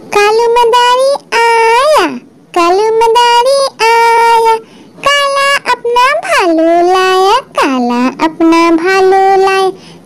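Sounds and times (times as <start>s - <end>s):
child singing: 0.1s - 9.8s.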